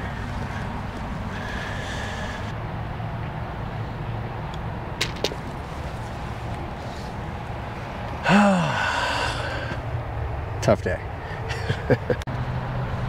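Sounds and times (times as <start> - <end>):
low outdoor rumble: 0.0 - 13.0
golf ball dropping into cup: 5.0 - 5.5
putter tapping golf ball: 5.0 - 5.5.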